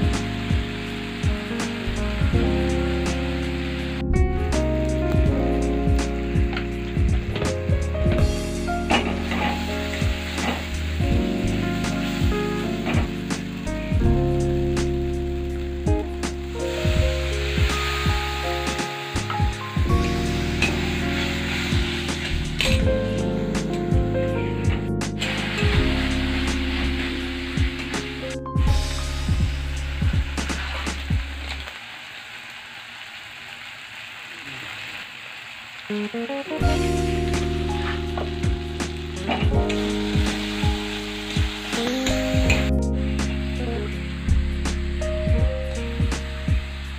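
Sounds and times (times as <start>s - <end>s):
food sizzling in oil: 0.0s - 23.8s, 25.1s - 46.9s
instrumental music: 0.0s - 31.6s, 35.9s - 46.9s.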